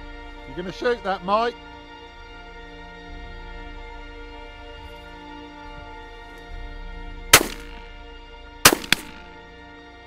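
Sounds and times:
background music: 0.0 - 10.0
shotgun shots: 7.4 - 7.9, 8.7 - 9.4.

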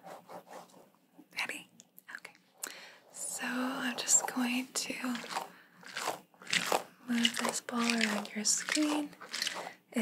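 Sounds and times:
stress ball crunchy crackles: 5.0 - 9.8.

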